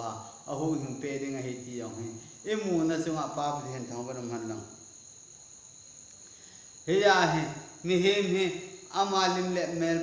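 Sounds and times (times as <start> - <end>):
light hiss: 0.0 - 10.0
man's voice: 6.9 - 10.0.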